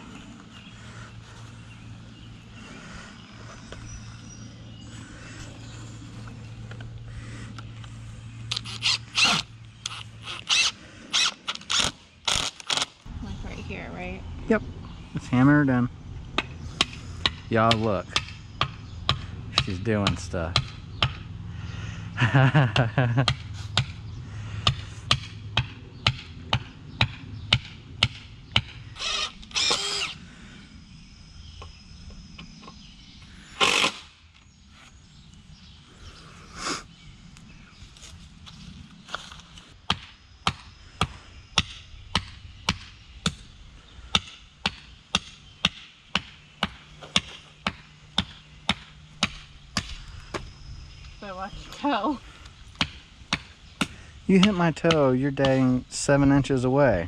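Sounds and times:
hammer striking wooden stake: 16.4 - 21.2, 23.3 - 24.0, 24.6 - 28.8, 39.9 - 43.4, 44.1 - 49.9, 52.8 - 55.7.

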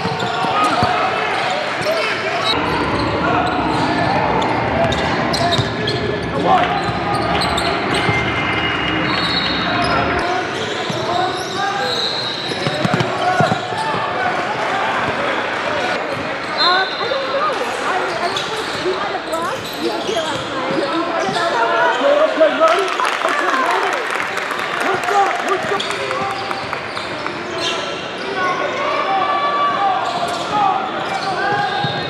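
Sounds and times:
sneaker squeaks: 0.0 - 14.1, 16.1 - 22.4, 25.5 - 29.0, 29.8 - 32.0
voices of players and spectators: 0.0 - 32.0.

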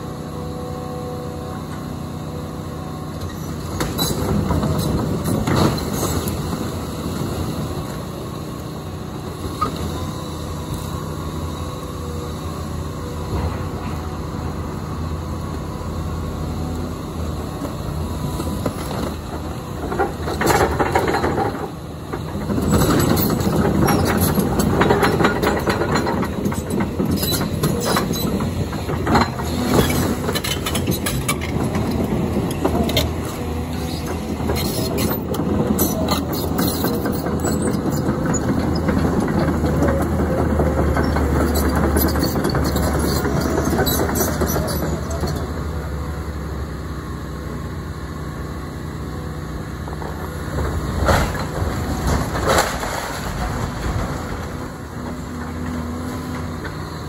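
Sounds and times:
excavator diesel engine running: 0.0 - 57.0
steel tracks clanking and rattling: 3.2 - 11.2, 17.5 - 45.7, 49.5 - 57.0.

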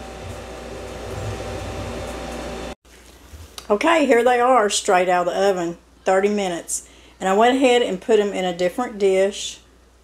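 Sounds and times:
low hum: 0.0 - 3.5
fan appliance whirring: 0.0 - 4.1.

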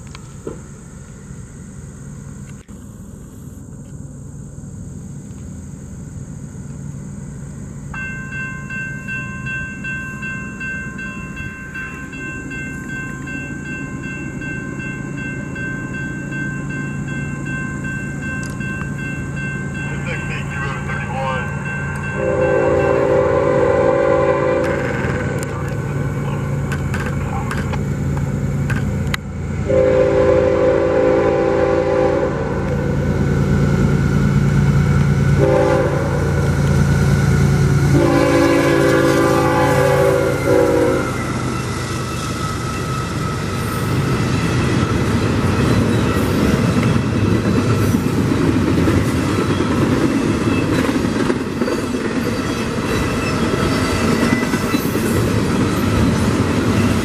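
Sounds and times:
diesel freight train rumble: 0.0 - 57.0
crossing warning bell ringing: 7.8 - 57.0
locomotive air horn blasts: 22.2 - 25.4, 29.6 - 32.8, 35.4 - 36.4, 37.9 - 41.3.

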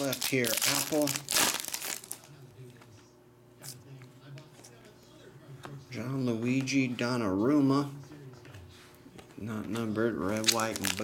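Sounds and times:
foil wrapper ripping: 0.0 - 2.3, 10.3 - 11.0
foil wrapper crinkling: 0.0 - 2.4, 10.2 - 11.0.

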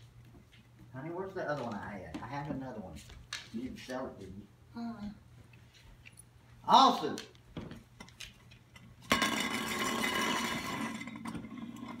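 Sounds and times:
metal spinning top rattling: 9.0 - 12.0.

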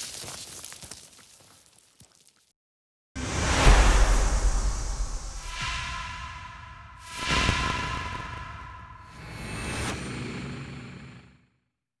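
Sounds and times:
whoosh sound effects: 3.2 - 10.1.

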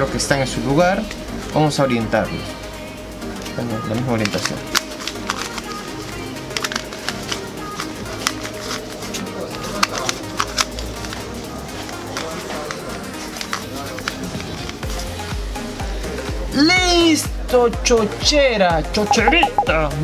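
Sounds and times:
background music: 0.0 - 20.0
puzzle cube clicking: 19.1 - 19.7.

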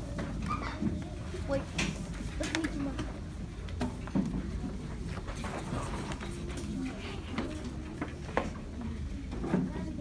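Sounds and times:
children's indistinct voices: 0.0 - 10.0.

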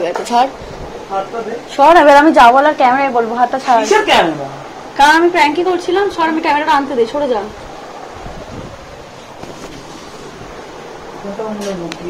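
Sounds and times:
camera handling rustle: 9.2 - 10.2.

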